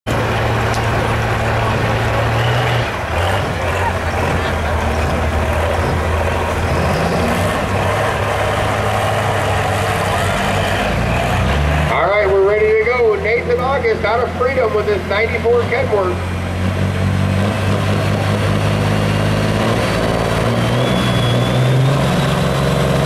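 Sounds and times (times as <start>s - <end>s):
diesel truck engine running: 0.0s - 23.0s
crowd chatter: 0.1s - 16.8s.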